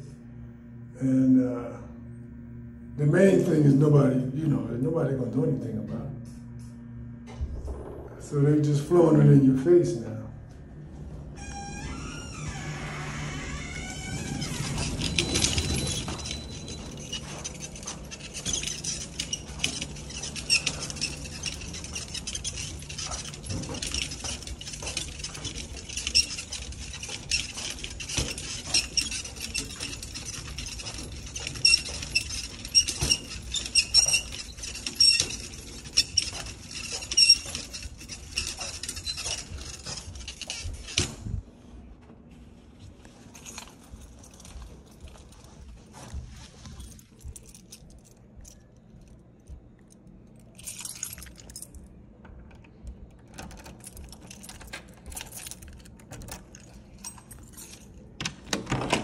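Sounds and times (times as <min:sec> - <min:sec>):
keys jangling: 0:13.9 - 0:41.4, 0:43.2 - 0:59.0
door clicks and knocks: 0:58.2 - 0:59.0.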